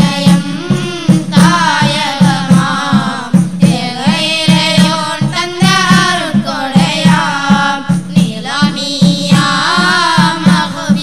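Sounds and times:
boys singing devotional song: 0.0s - 11.0s
tambourine beat: 0.0s - 11.0s.

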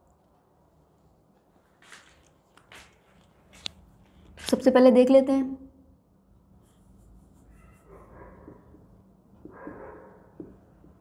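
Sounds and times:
marker pen on whiteboard: 6.4s - 11.0s.

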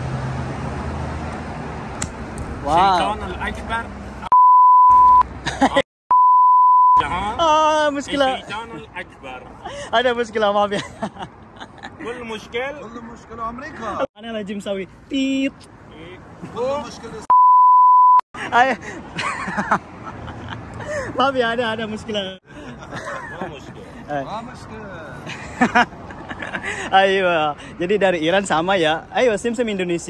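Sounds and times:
censor bleep: 4.3s - 5.3s, 6.1s - 7.0s, 17.3s - 18.2s.

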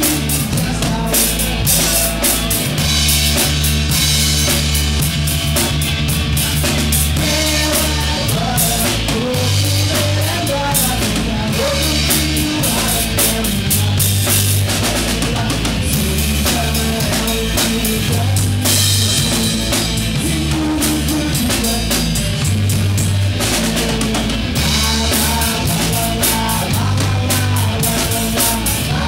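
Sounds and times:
drum kit and cymbal hits: 0.0s - 29.0s
electric guitars: 0.0s - 29.0s
rock band playing: 0.0s - 29.0s.

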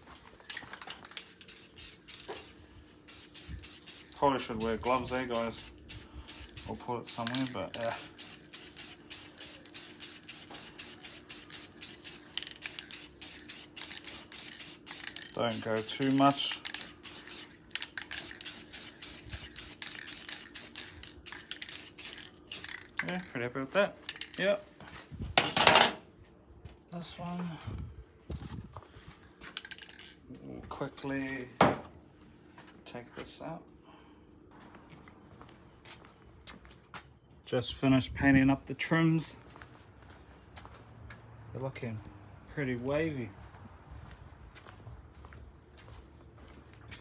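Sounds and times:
spray paint can hissing: 0.5s - 23.3s.

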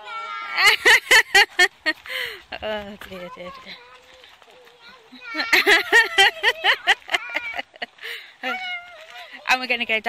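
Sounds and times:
woman laughing: 0.6s - 2.8s, 5.3s - 8.8s.

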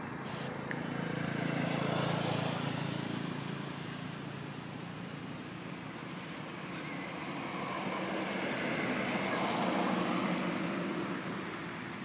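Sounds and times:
vehicle engine passing by: 0.2s - 4.6s, 6.6s - 11.9s.

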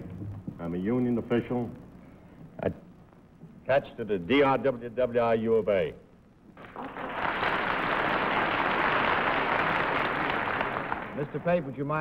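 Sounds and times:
studio audience applauding: 6.6s - 12.0s.

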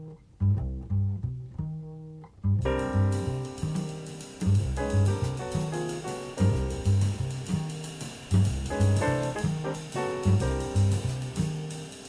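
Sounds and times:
plucked bass notes: 0.0s - 11.9s.

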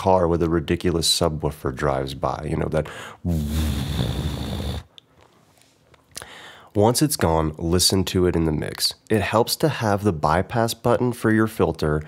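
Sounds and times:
man imitating subwoofer bass: 3.2s - 4.9s.

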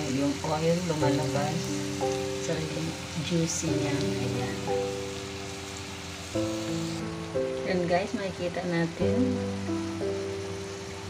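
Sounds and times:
background music of sustained chords: 0.0s - 11.0s
tomatoes sizzling in a pan: 0.0s - 11.0s.

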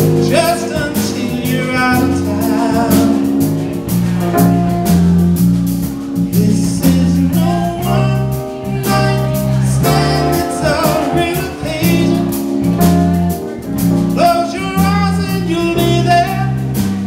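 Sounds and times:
man singing: 0.0s - 4.0s, 6.0s - 17.0s
electric bass long low notes: 0.0s - 17.0s
electric keyboard: 0.0s - 17.0s.

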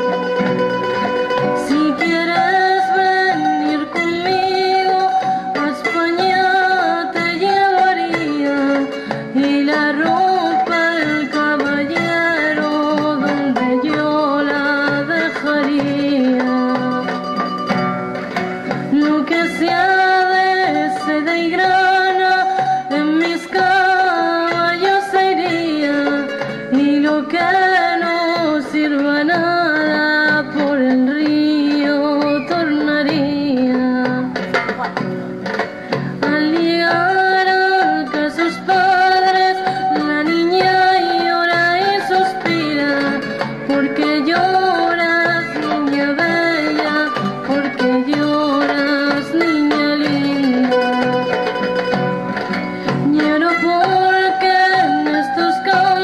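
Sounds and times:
acoustic guitar: 0.0s - 56.0s
folk music melody: 0.0s - 56.0s
frame drum: 0.0s - 56.0s
twelve-string lute: 0.0s - 56.0s.

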